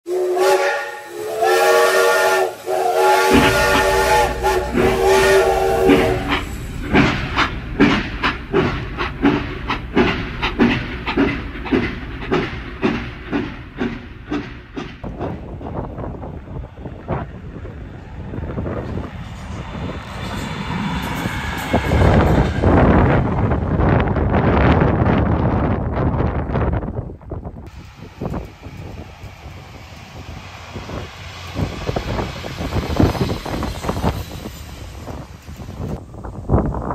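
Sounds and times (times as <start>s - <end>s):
locomotive horn blasts: 0.1s - 6.5s
train wheels clacking over rail joints: 2.8s - 17.3s
broad rushing noise: 27.7s - 36.9s.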